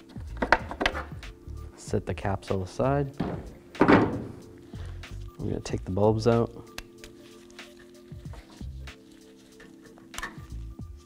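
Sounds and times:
background music: 0.0 - 11.0
dull knock of hard plastic: 3.2 - 4.4.

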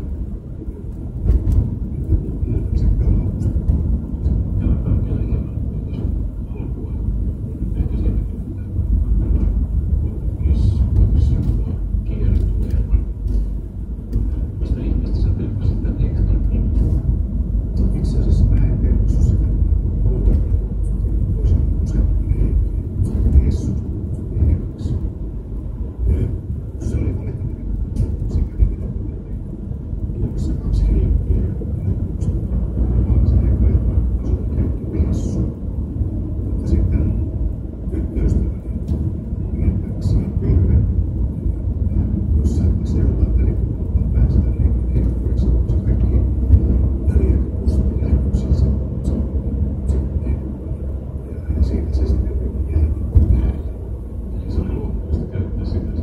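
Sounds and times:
low rumble of tyres and engine: 0.0 - 56.0.

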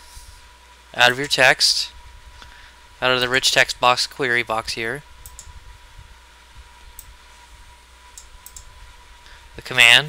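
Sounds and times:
low electrical hum: 0.0 - 10.0
computer mouse clicks: 5.2 - 5.5, 8.1 - 8.7.

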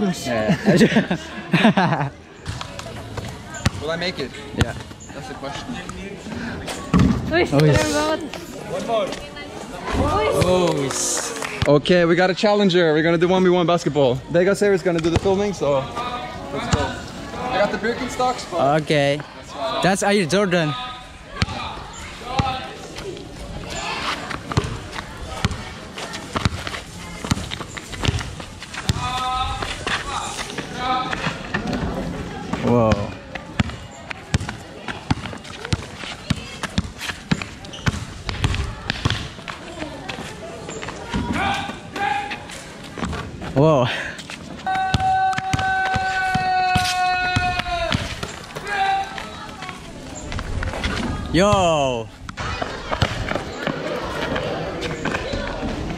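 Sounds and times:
voices calling: 0.0 - 55.9
basketball bouncing on pavement: 2.4 - 5.0, 6.9 - 7.4, 14.9 - 15.4, 21.3 - 22.7, 24.2 - 42.2, 42.8 - 43.6, 44.8 - 55.9.

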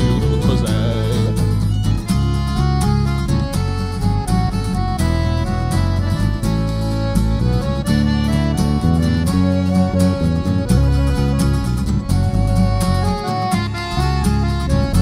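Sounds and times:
accordion waltz with guitars and violin: 0.0 - 15.0.

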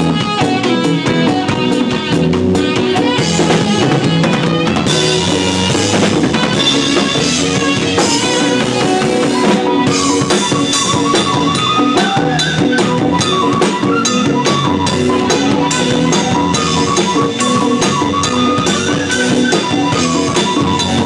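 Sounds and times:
drum kit played with sticks: 0.0 - 21.0.

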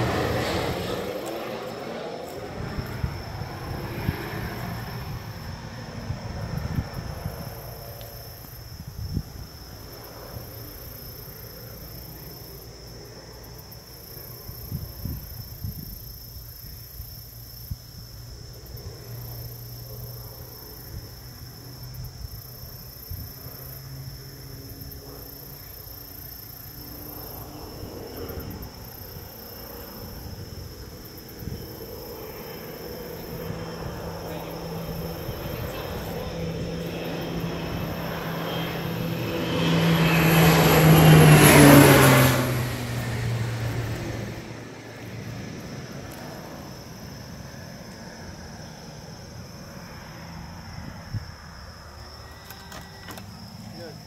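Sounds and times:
propeller airplane passing overhead: 0.0 - 54.0.

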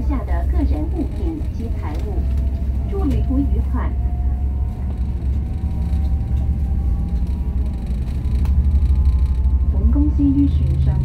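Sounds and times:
ferry engines rumbling: 0.0 - 11.0.

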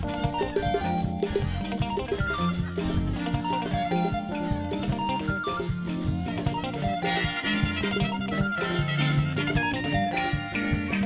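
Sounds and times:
guitar: 0.0 - 11.0
live band playing upbeat music: 0.0 - 11.0
saxophone: 0.0 - 11.0
steady drum beat: 0.0 - 11.0.

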